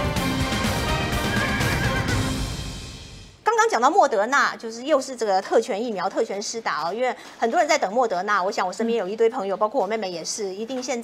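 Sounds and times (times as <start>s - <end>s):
theme music: 0.0s - 3.4s
horse whinny: 1.0s - 2.4s.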